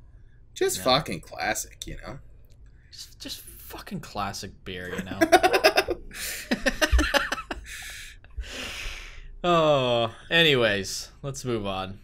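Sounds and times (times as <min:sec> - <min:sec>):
men laughing: 0:05.0 - 0:08.1.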